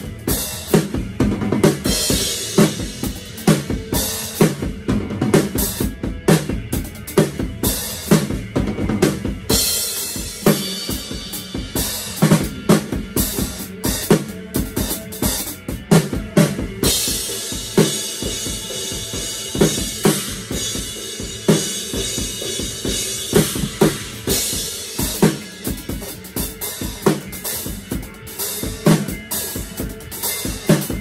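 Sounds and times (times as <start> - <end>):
drum kit beat: 0.0 - 31.0.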